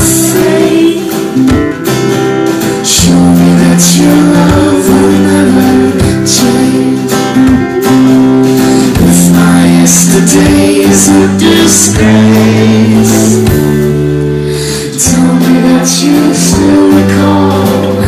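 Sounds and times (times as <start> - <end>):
woman singing: 0.0 - 2.0, 2.6 - 13.9, 14.5 - 18.0
regular beat: 0.0 - 18.0
strummed acoustic guitar: 0.0 - 18.0.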